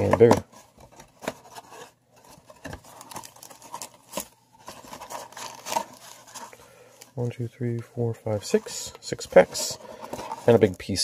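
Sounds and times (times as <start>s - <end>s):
foil packs crinkling: 1.5s - 7.1s.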